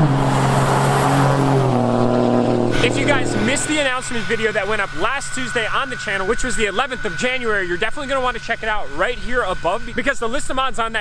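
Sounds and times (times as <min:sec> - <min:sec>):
pickup truck driving past: 0:00.0 - 0:04.4
tyre and road noise: 0:00.0 - 0:05.0.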